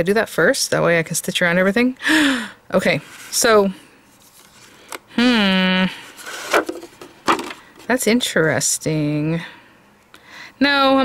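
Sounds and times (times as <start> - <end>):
woman speaking: 0.0 - 2.0, 2.7 - 3.8, 5.2 - 6.0, 7.9 - 9.6, 10.6 - 11.0.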